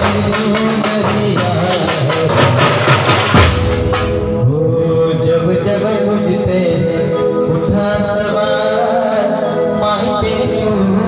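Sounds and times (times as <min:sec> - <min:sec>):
drums beating dense rhythm: 0:00.0 - 0:04.6
band melody: 0:00.0 - 0:11.0.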